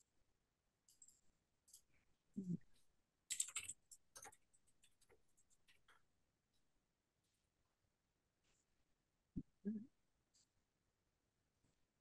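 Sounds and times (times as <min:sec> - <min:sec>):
typing on computer keyboard: 0:03.3 - 0:06.0.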